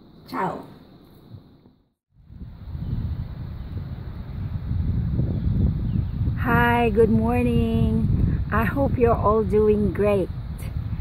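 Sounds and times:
wind buffeting microphone: 0:02.2 - 0:11.0.

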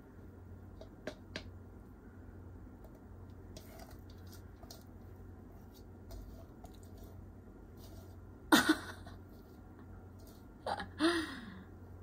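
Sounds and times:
spoon scraping a bowl: 0:03.5 - 0:04.8, 0:05.7 - 0:07.2.

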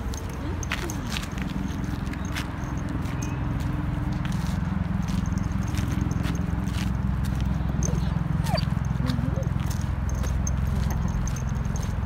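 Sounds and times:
footsteps on gravel path: 0:00.0 - 0:12.0
steady low rumble: 0:00.0 - 0:12.0.

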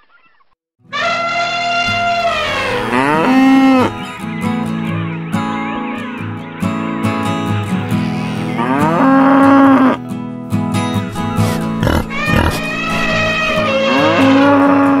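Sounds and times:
guitar music: 0:01.6 - 0:15.0
cow mooing: 0:02.1 - 0:04.0, 0:08.0 - 0:10.0, 0:11.2 - 0:15.0.

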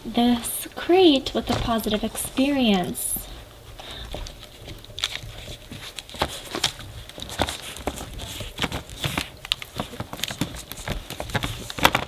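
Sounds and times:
newspaper rustling: 0:01.0 - 0:12.0.

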